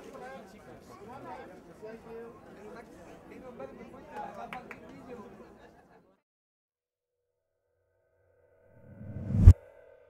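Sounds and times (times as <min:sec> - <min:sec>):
whoosh sound effect: 0:08.9 - 0:09.6.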